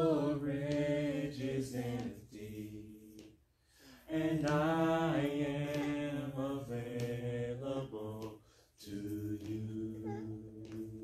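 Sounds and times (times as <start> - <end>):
man singing a slow worship song: 0.0 - 11.0
man breathing: 3.5 - 4.1, 8.4 - 8.8.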